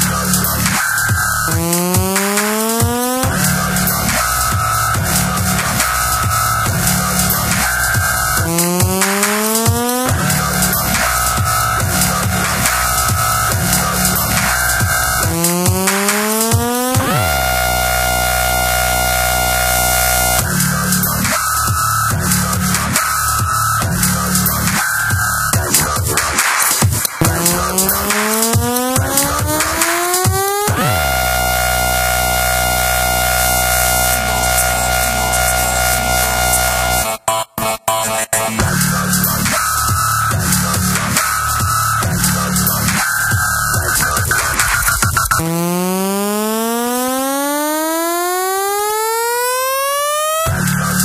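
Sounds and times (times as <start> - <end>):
dubstep track: 0.0 - 51.0
buzzy synth tone rising in pitch: 1.3 - 20.9, 27.2 - 37.2, 45.3 - 51.0.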